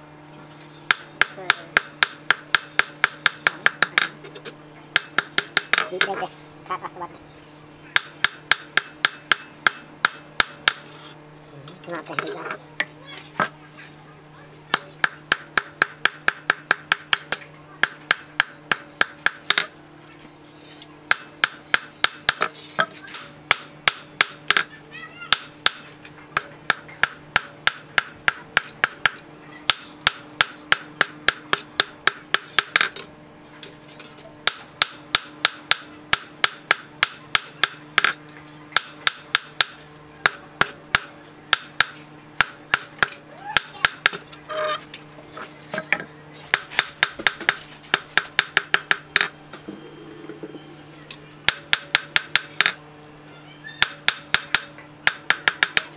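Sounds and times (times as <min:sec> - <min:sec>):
steady low hum: 0:00.0 - 0:55.9
hammer striking steel on anvil: 0:00.9 - 0:04.2, 0:07.9 - 0:10.9, 0:14.7 - 0:19.7, 0:21.1 - 0:24.7, 0:26.4 - 0:33.0, 0:38.8 - 0:44.2, 0:51.4 - 0:52.8, 0:53.8 - 0:55.9.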